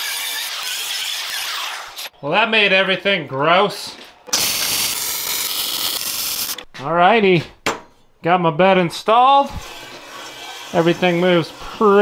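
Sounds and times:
welder arc hissing: 0:04.3 - 0:06.6.

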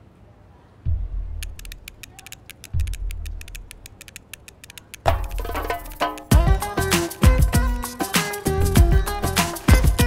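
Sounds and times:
deep bass booms: 0:00.9 - 0:01.4
fast ticking percussion: 0:01.4 - 0:10.0.

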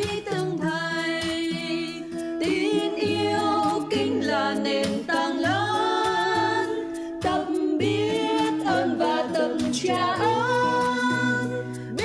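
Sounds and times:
person singing: 0:00.0 - 0:12.0.

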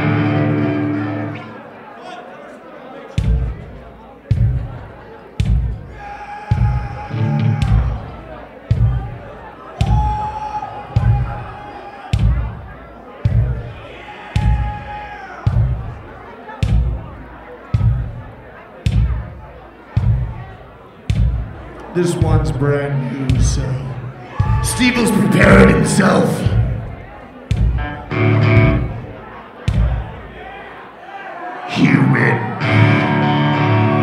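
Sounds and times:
heavy drum hits: 0:10.9 - 0:11.4, 0:24.4 - 0:27.9.

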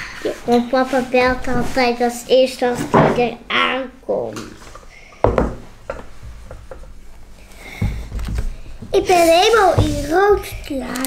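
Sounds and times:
sharp knock on table: 0:05.2 - 0:06.0.

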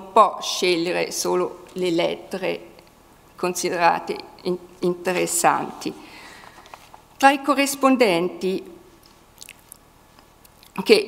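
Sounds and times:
woman speaking: 0:00.0 - 0:02.8, 0:03.4 - 0:06.1, 0:07.2 - 0:08.9, 0:10.7 - 0:11.0.

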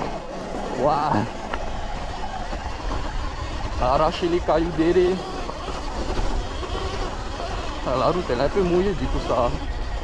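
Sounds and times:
tyres on loose dirt and stones: 0:00.0 - 0:10.0
wind rumbling on microphone: 0:00.0 - 0:10.0.

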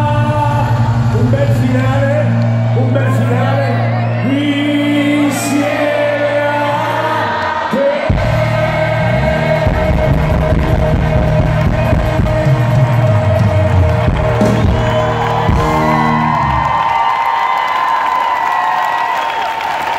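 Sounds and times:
live pop band playing: 0:00.0 - 0:17.0
audience whooping and cheering: 0:01.2 - 0:19.9.

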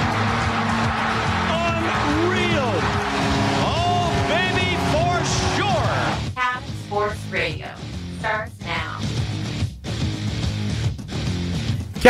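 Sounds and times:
crowd noise with whoops: 0:00.0 - 0:06.2
music: 0:00.0 - 0:12.0.

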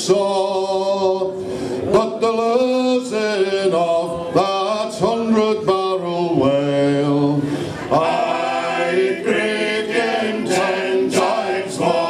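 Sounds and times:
men singing in harmony: 0:00.0 - 0:12.0.

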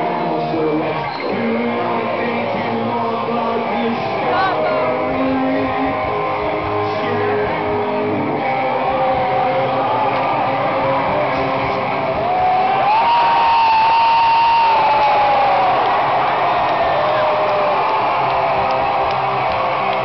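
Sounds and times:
crowd cheering and shouting: 0:00.0 - 0:20.0
long held shout: 0:12.2 - 0:20.0.

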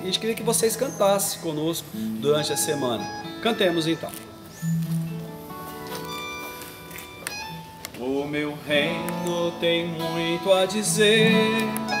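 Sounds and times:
acoustic guitar strokes: 0:01.8 - 0:12.0
accordion chords: 0:01.9 - 0:12.0.

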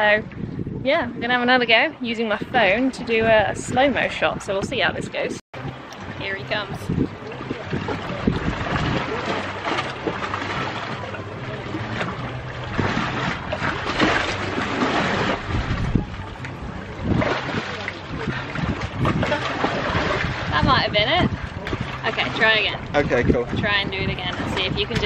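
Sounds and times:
wind buffeting microphone: 0:00.0 - 0:25.0
water sloshing and splashing: 0:01.3 - 0:25.0.

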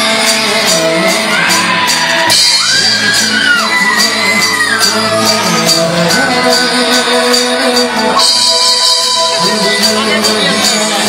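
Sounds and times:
crowd shouting and whooping: 0:00.0 - 0:11.0
high percussion strokes: 0:00.0 - 0:11.0
live band music: 0:00.0 - 0:11.0
person singing: 0:00.0 - 0:11.0.

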